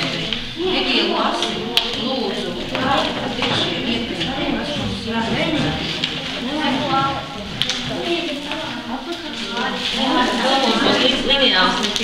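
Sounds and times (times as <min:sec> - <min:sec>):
indistinct talk: 0:00.0 - 0:12.0.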